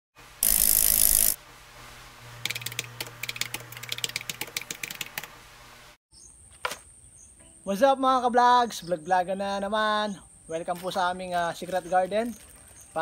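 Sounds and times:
rapid clicks like typing: 0:02.4 - 0:05.3.

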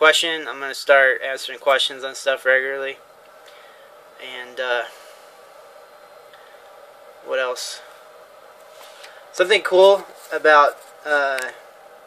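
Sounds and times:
background hiss: 0:00.0 - 0:12.0
faint hum: 0:00.0 - 0:12.0.

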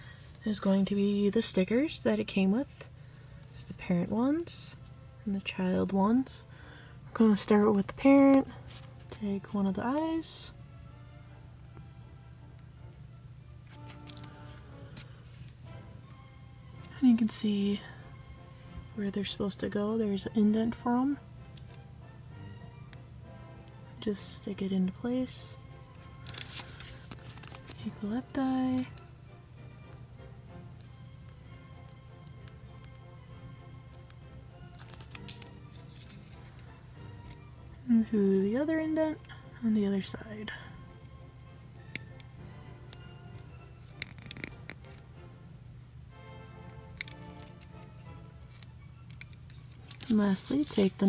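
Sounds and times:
soft background music: 0:00.0 - 0:51.0
plastic puzzle clicks and rustles: 0:26.2 - 0:27.8, 0:34.0 - 0:36.6, 0:43.8 - 0:45.0, 0:46.9 - 0:51.0
plastic puzzle clicks: 0:47.0 - 0:47.8, 0:48.5 - 0:50.1.

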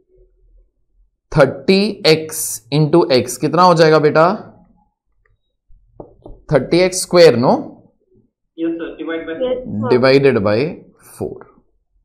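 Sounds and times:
man speaking: 0:08.5 - 0:11.6.

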